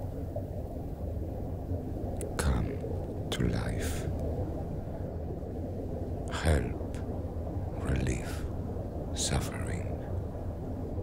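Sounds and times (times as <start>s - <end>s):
steady low rumble: 0.0s - 11.0s
person whispering: 2.2s - 4.2s, 6.3s - 7.0s, 7.8s - 8.4s, 9.2s - 10.0s.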